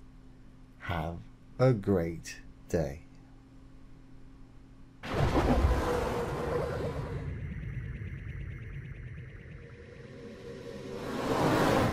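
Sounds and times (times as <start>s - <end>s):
loud sound effect hit: 5.0s - 11.0s
pulsing synth music: 7.3s - 10.5s.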